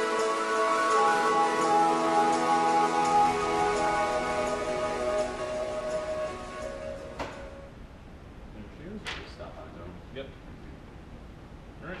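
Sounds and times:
background music: 0:00.0 - 0:07.8.

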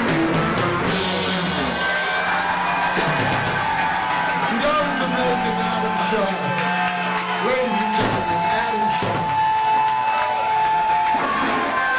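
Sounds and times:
crowd cheering: 0:00.0 - 0:11.9
rock band holding high note: 0:00.0 - 0:11.9.

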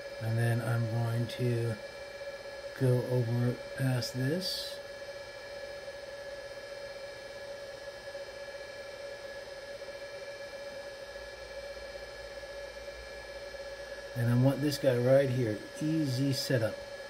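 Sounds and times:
cooling fans whining: 0:00.0 - 0:17.0.

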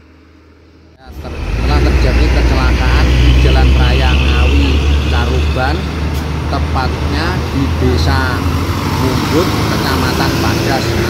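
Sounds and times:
heavy traffic rumbling: 0:00.0 - 0:11.0
people's voices: 0:01.0 - 0:11.0.

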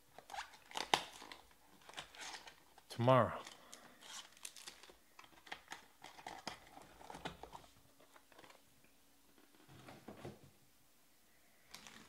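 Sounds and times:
foil packs and cardboard crinkling: 0:00.2 - 0:02.8, 0:03.4 - 0:08.6.

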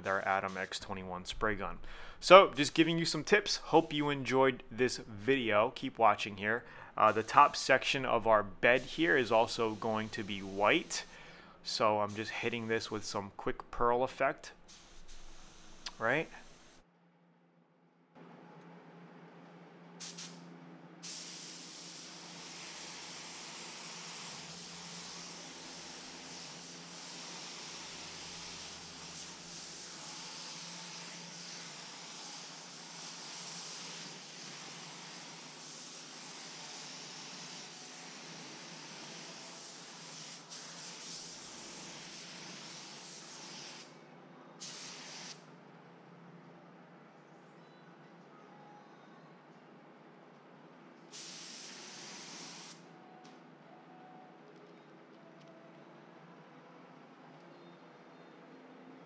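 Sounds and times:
spray gun hissing: 0:00.0 - 0:00.8, 0:07.0 - 0:07.8, 0:08.5 - 0:13.0, 0:14.6 - 0:16.8, 0:20.0 - 0:20.4, 0:21.0 - 0:43.9, 0:44.6 - 0:45.4, 0:51.1 - 0:52.8.

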